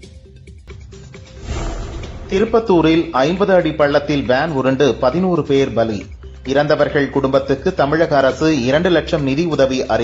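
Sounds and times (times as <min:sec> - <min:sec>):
loud rushing whoosh: 0:01.3 - 0:03.4.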